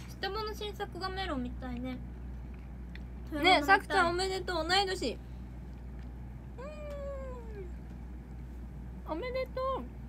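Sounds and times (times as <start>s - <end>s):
woman speaking: 0.0s - 2.0s, 9.0s - 10.0s.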